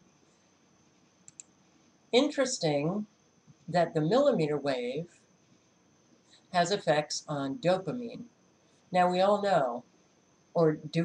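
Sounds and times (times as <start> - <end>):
computer mouse clicks: 1.2 - 1.5.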